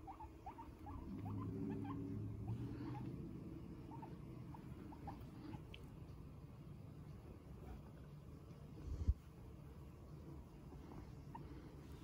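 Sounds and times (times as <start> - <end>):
guinea pigs squeaking: 0.0 - 8.2, 10.6 - 12.0
low hum: 0.0 - 12.0.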